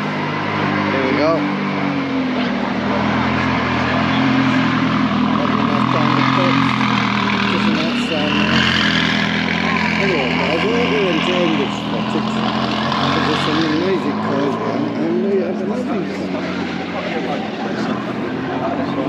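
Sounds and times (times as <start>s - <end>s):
car pulling away: 0.0s - 19.0s
race car engine idling: 0.0s - 19.0s
people talking: 0.8s - 1.5s, 2.2s - 9.0s, 9.6s - 19.0s.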